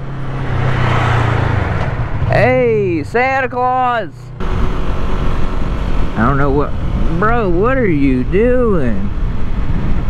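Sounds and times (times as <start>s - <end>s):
motorcycle engine riding: 0.0s - 10.0s
wind and road noise: 0.0s - 10.0s.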